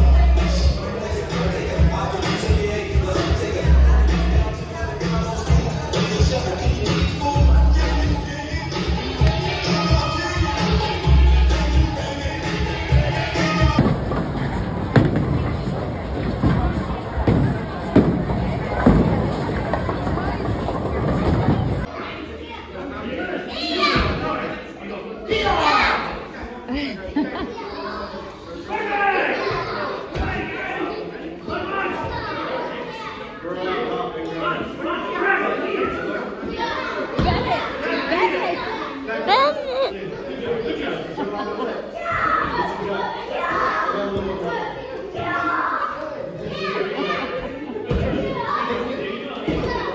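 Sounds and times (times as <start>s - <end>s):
children's voices echoing in a hall: 0.0s - 41.0s, 41.6s - 49.9s.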